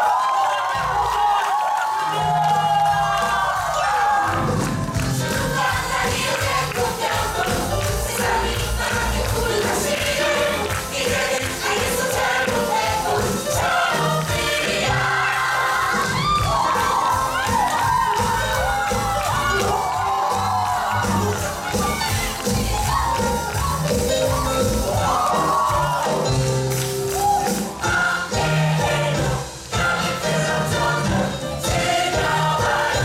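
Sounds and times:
audience cheering: 0:00.0 - 0:05.7, 0:14.8 - 0:27.9
upbeat musical number with singing: 0:00.0 - 0:33.0.

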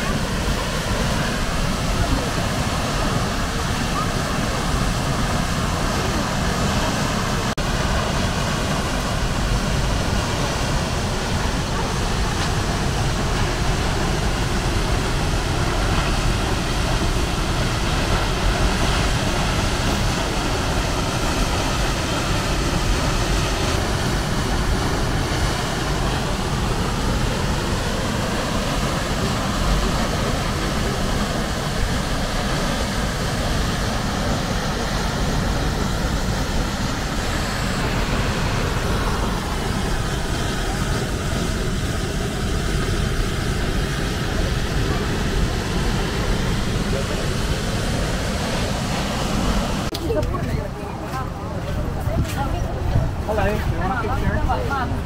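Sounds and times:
waterfall rushing: 0:00.0 - 0:55.0.

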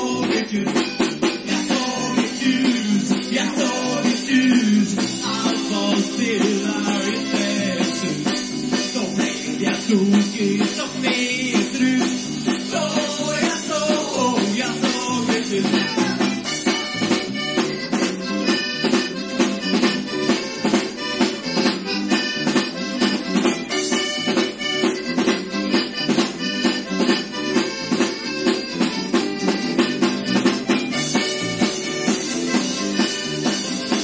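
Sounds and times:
accordion: 0:00.0 - 0:34.0
fast drum beat: 0:00.0 - 0:34.0
live rock band: 0:00.0 - 0:34.0.

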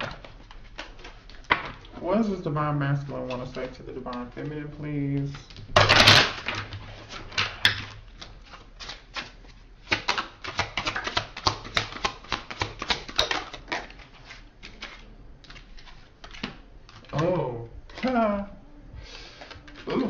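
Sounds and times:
cards being shuffled: 0:00.0 - 0:02.4, 0:03.0 - 0:18.5, 0:19.1 - 0:20.0.

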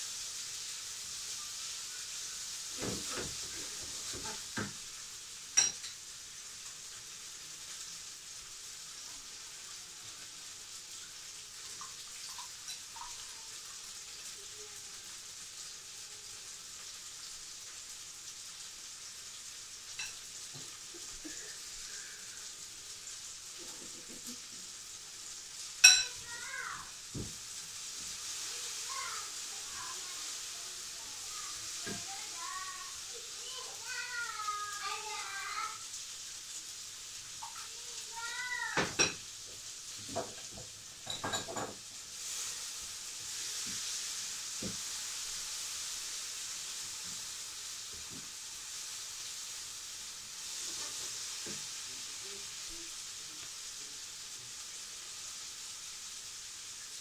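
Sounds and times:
eggs sizzling in a frying pan: 0:00.0 - 0:57.0.

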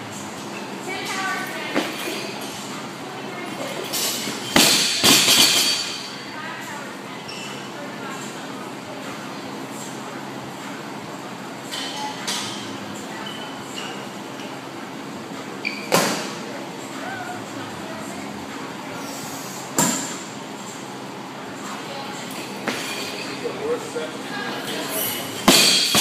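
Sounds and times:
barbell crashing onto gym floor: 0:25.4 - 0:26.0.

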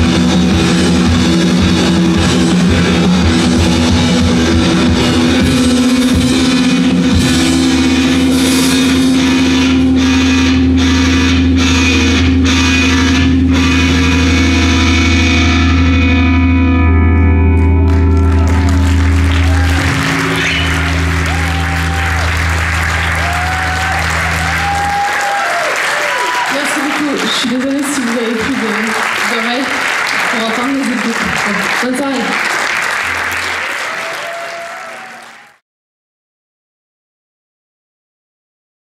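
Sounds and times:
rock band distorted chord: 0:00.0 - 0:28.4
audience cheering and applauding: 0:17.6 - 0:35.6.

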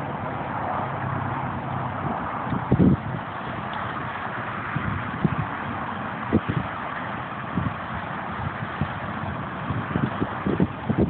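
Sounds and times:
cattail leaves rustling in wind: 0:00.0 - 0:11.0
wind buffeting microphone: 0:00.0 - 0:11.0.

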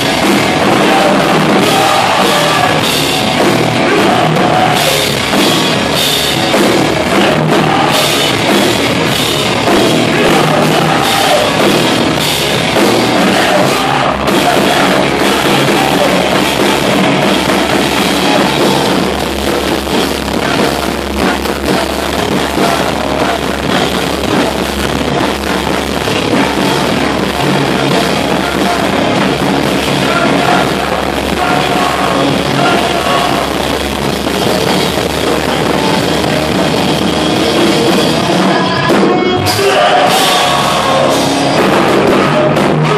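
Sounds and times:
drum kit: 0:00.0 - 0:42.9
electric guitar: 0:00.0 - 0:42.9
live rock band playing: 0:00.0 - 0:42.9.

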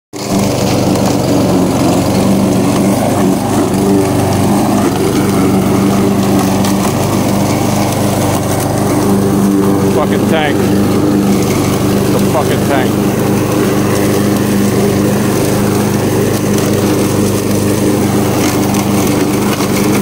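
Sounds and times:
lawn mower engine running: 0:00.1 - 0:20.0.

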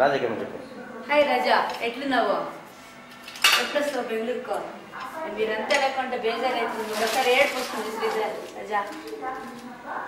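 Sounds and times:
metal kitchen utensils clattering: 0:03.3 - 0:04.0.

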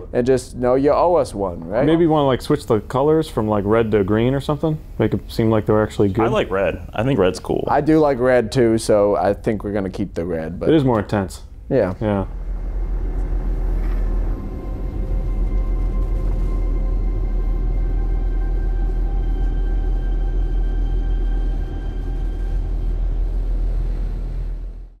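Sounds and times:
low droning rumble: 0:12.2 - 0:25.0.

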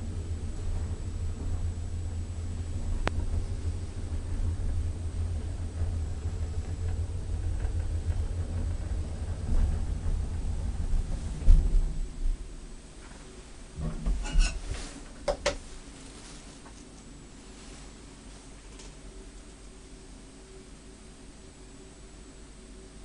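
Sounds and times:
elevator running rumble: 0:00.0 - 0:23.0
elevator stopping thump: 0:02.6 - 0:12.6.

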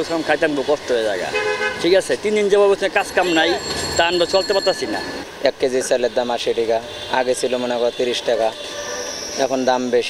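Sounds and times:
man speaking: 0:00.0 - 0:08.7
vehicle horn tooting: 0:01.3 - 0:01.9.

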